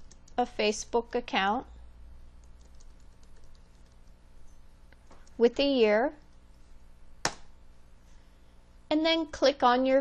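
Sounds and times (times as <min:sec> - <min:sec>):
typing on computer keyboard: 0:02.4 - 0:04.2.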